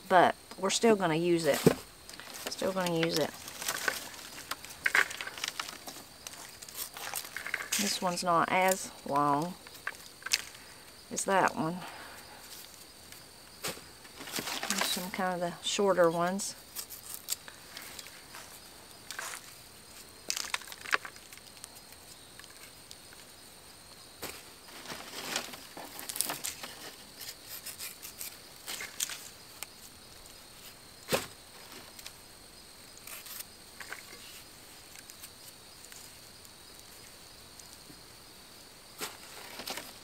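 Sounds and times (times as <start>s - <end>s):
carrots being trimmed by hand: 16.6s - 18.0s, 25.9s - 29.4s, 32.9s - 33.5s.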